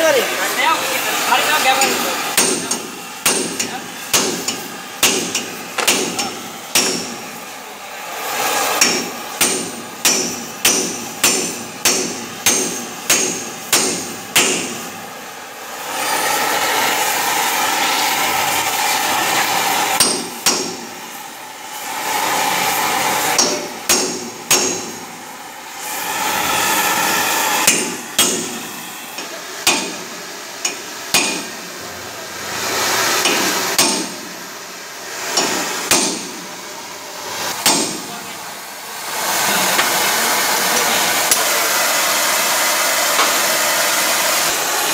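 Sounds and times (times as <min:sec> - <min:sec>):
gas torch hissing: 0:00.0 - 0:44.9.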